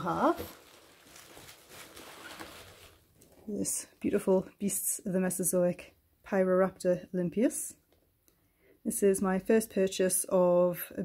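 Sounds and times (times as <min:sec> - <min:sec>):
bubble wrap rustling: 0:00.0 - 0:03.5.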